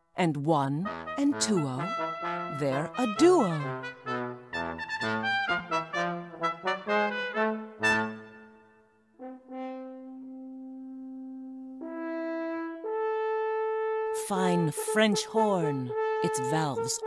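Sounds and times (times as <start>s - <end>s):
trombone and trumpet duet: 0.8s - 8.4s, 9.2s - 17.0s
french horn long notes: 0.8s - 17.0s.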